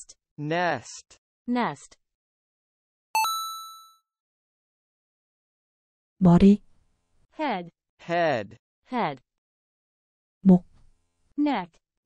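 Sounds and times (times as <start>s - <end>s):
bright bell chime: 3.2s - 4.0s.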